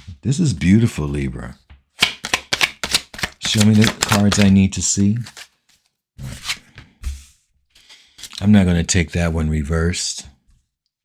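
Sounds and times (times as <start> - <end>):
cards rustling: 2.0 - 8.4.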